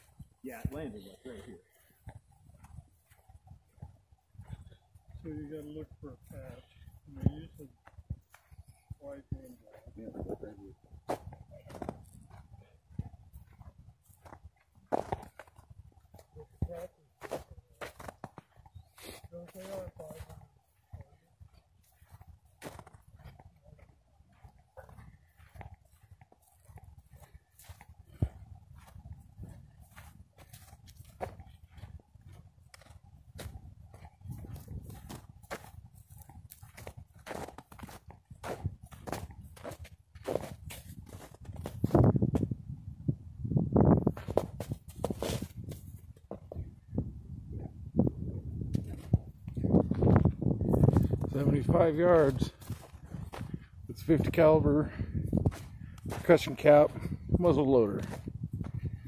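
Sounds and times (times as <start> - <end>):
footsteps on thin snow: 0.0 - 42.7, 43.8 - 46.9, 48.5 - 59.0.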